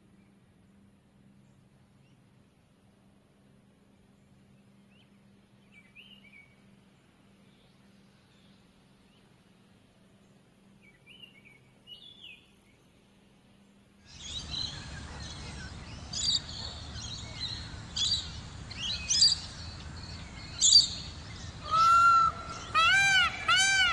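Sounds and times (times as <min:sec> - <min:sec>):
outdoor background noise: 0:00.0 - 0:23.9
small birds chirping: 0:14.0 - 0:23.9
loud pitched bird call: 0:21.6 - 0:23.9.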